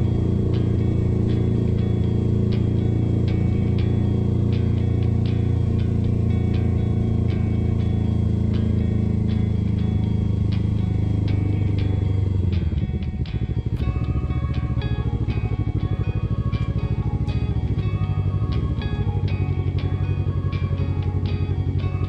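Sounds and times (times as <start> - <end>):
motorcycle engine idling: 0.0 - 22.0
music with plucked notes: 0.0 - 22.0.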